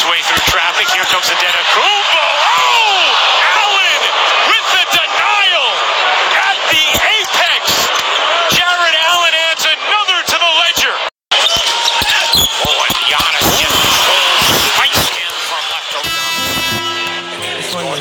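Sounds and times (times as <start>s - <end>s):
arena crowd noise: 0.0s - 18.0s.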